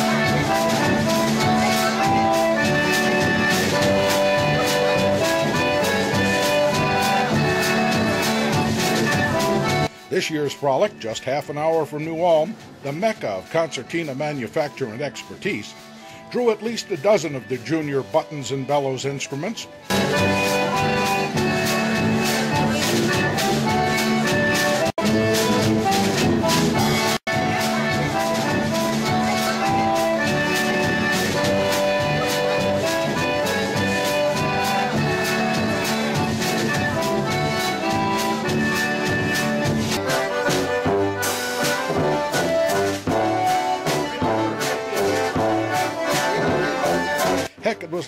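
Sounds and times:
acoustic guitar accompaniment: 0.0 - 48.0
concertina chords: 0.0 - 48.0
polka band playing: 0.0 - 48.0.

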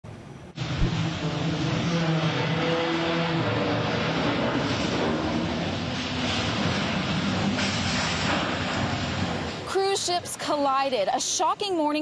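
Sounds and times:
wavering low droning tones: 0.5 - 7.6.

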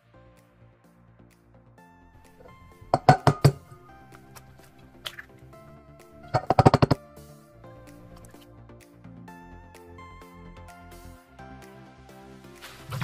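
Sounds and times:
background music: 0.0 - 13.0
eggs tapped against metal bowl: 2.9 - 3.6, 6.4 - 7.0.

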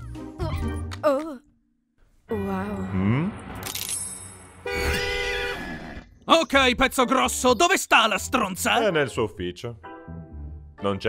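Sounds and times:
horn-like tone: 4.6 - 5.8.

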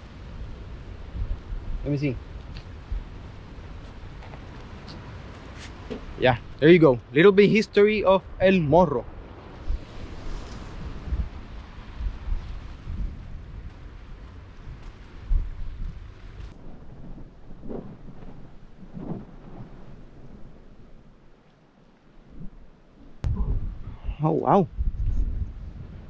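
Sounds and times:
wind buffeting microphone: 0.0 - 21.3, 22.1 - 26.0.

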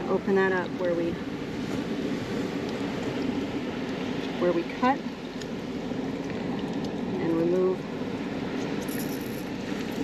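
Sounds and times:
wind: 0.0 - 10.0.

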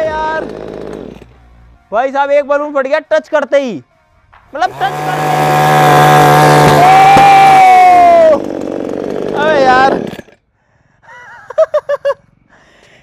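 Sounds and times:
chainsaw revving: 0.0 - 1.3, 4.6 - 10.4
people laughing: 11.1 - 12.2.

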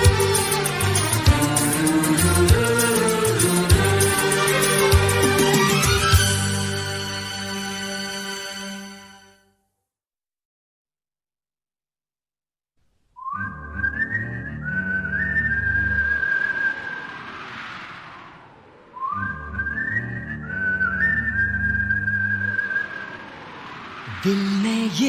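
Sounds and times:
whistled melody: 0.0 - 9.4, 13.2 - 17.2, 19.0 - 23.4.

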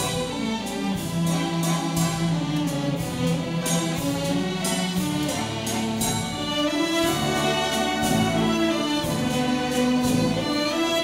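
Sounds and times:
orchestra playing sustained chords: 0.0 - 11.0.

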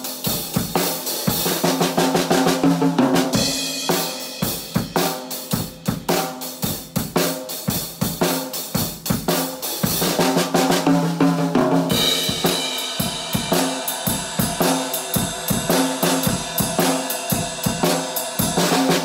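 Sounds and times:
drum kit shuffle beat: 0.0 - 19.0.

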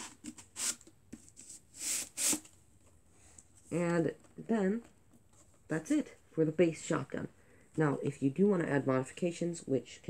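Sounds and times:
cardboard tubes scraping: 0.0 - 2.5.

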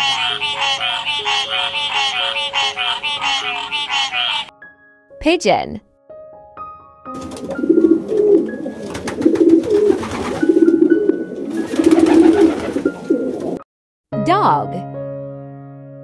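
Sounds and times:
pigeons cooing: 7.4 - 13.6.

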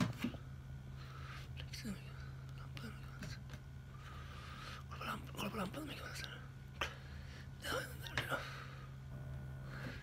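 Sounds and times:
steady low hum: 0.0 - 10.0
man mumbling and whispering: 7.6 - 8.6.

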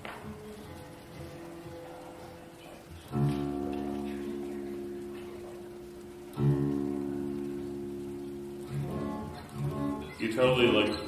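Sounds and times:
acoustic guitar chords strummed: 3.1 - 11.0.

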